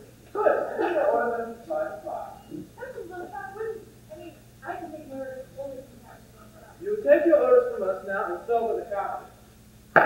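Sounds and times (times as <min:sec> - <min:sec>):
actors speaking: 0:00.0 - 0:09.5.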